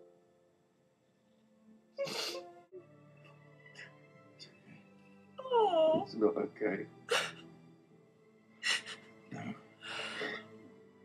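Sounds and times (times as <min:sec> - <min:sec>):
soft background music: 0:00.0 - 0:11.0
woman sobbing: 0:02.0 - 0:02.4, 0:07.1 - 0:07.4, 0:08.6 - 0:09.1.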